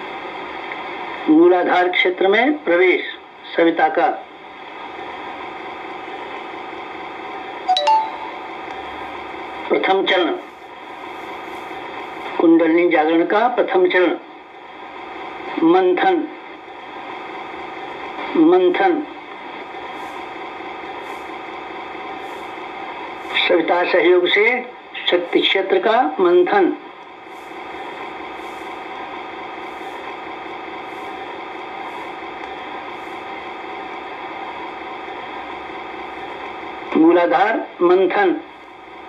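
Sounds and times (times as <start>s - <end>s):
room hum: 0.0s - 39.0s
faint pulsing hiss: 8.2s - 37.0s.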